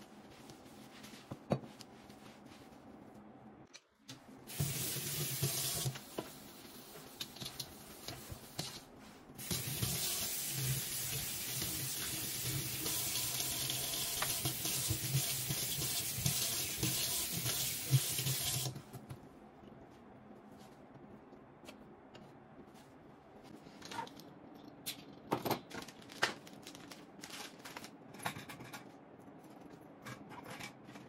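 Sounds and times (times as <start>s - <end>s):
tap water running into steel sink: 9.4s - 18.7s.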